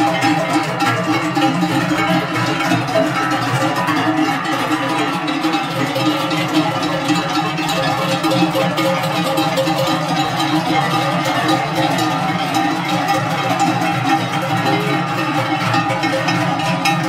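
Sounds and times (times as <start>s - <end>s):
cowbells clanging: 0.0s - 17.0s.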